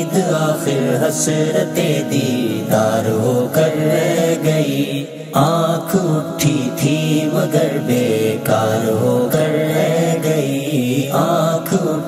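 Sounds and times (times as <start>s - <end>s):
man singing: 0.0s - 12.0s.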